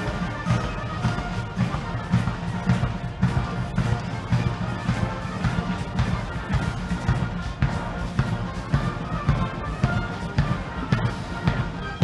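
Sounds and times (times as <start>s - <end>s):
drums beating steadily: 0.0s - 12.0s
military band playing a march: 0.0s - 12.0s.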